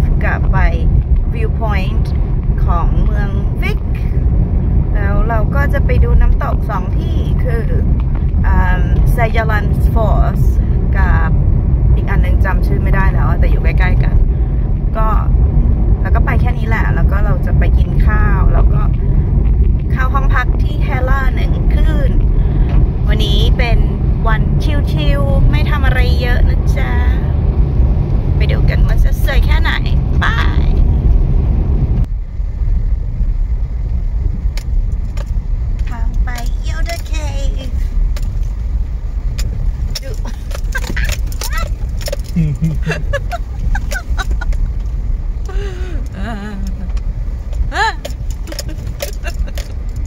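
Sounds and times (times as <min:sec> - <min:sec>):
people talking: 0:00.0 - 0:04.2, 0:04.9 - 0:11.4, 0:12.0 - 0:14.2, 0:15.0 - 0:15.4, 0:16.0 - 0:19.0, 0:19.9 - 0:22.2, 0:23.0 - 0:27.3, 0:28.4 - 0:30.8, 0:35.9 - 0:37.9, 0:40.0 - 0:41.7, 0:42.3 - 0:44.5, 0:45.5 - 0:46.9, 0:47.7 - 0:49.7
car road and engine rumble: 0:00.0 - 0:50.0.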